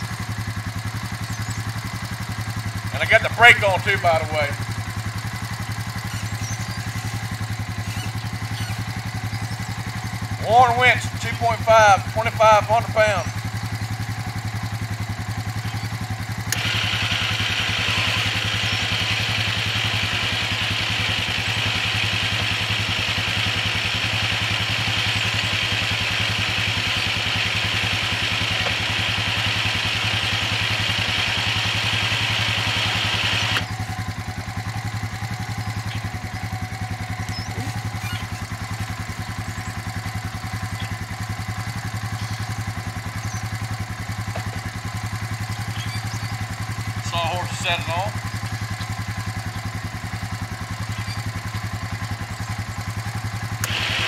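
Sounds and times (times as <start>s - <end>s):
engine idling: 0.0s - 54.0s
electric winch whining: 15.5s - 54.0s.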